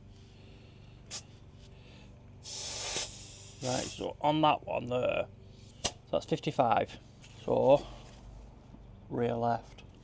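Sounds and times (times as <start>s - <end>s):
air hissing at tyre valve: 2.4s - 4.1s.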